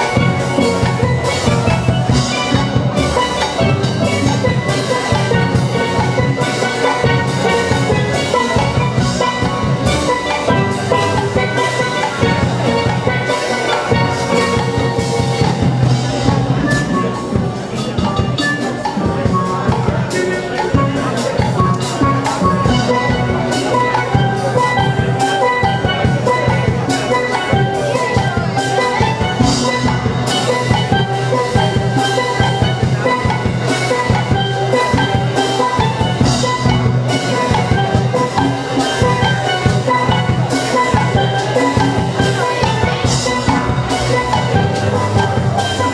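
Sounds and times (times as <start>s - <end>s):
drum kit: 0.0s - 45.9s
steelpans playing: 0.0s - 45.9s.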